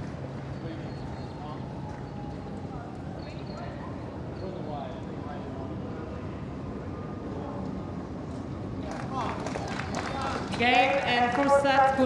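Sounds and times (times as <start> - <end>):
crowd murmuring and chattering: 0.0 - 12.0
people clapping: 8.8 - 11.6.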